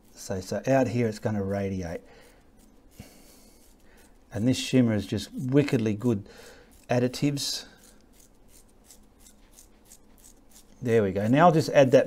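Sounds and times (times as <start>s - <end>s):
toothbrush bristles flicking paint: 0.0s - 12.0s.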